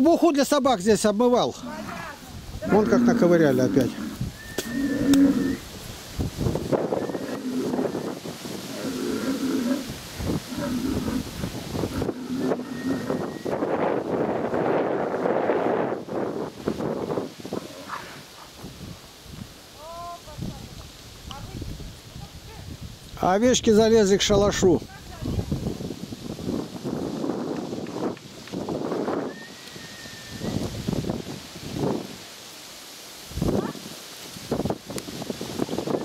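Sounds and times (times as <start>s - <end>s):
bulls bellowing: 1.6s - 5.7s, 6.7s - 13.8s.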